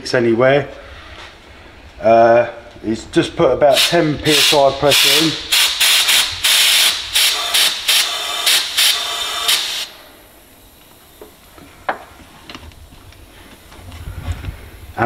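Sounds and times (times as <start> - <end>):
compressed air hissing in bursts: 3.7 - 11.3.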